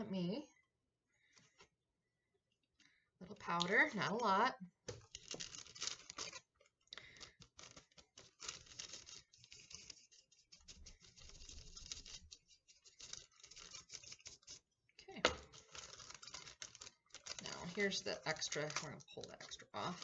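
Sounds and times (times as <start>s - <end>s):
wax paper crinkling: 3.4s - 20.0s.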